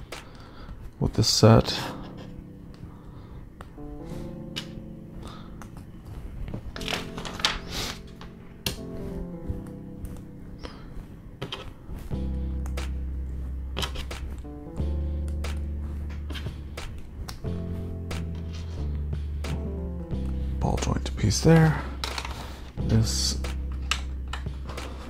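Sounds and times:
synth chord music: 1.4 - 11.4, 12.1 - 25.0
plastic pieces clicking: 22.0 - 22.4.

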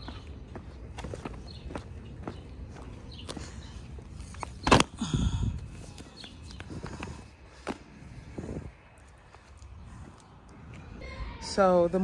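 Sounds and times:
footsteps on concrete: 0.0 - 4.8.

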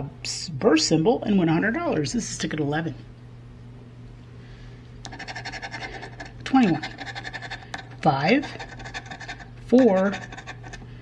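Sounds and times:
plastic scratcher scraping ticket: 5.1 - 10.8.

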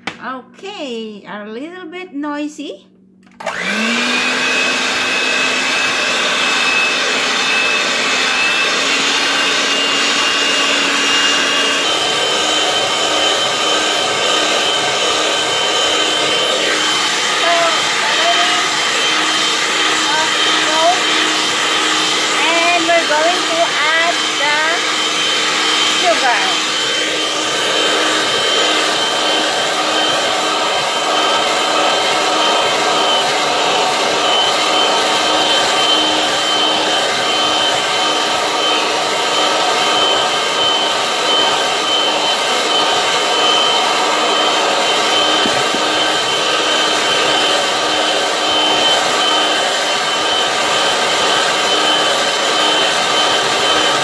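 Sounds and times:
electric hand mixer whining: 3.4 - 54.0.

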